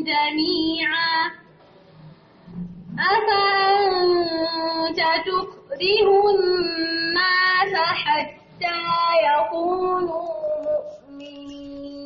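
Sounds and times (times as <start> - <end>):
woman reciting melodically: 0.0 - 1.5, 2.9 - 12.0.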